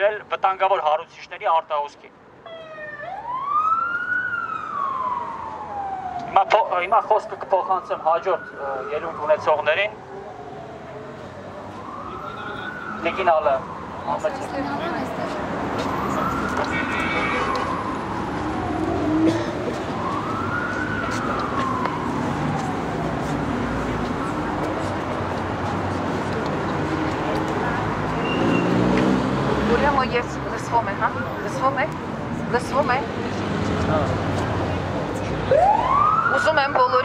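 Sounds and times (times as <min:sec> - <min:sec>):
megaphone siren wail: 0:02.4 - 0:26.2, 0:35.4 - 0:37.0.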